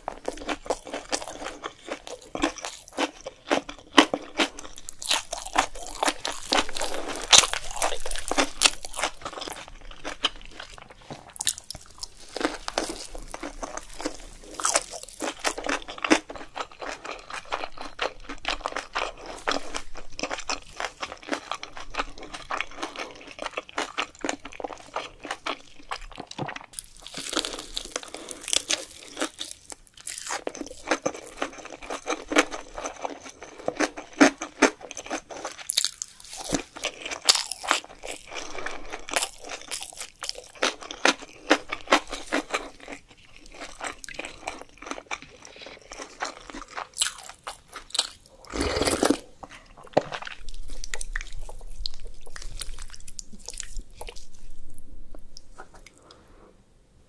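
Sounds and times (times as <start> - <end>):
person chewing crunchy food: 0.0 - 56.3.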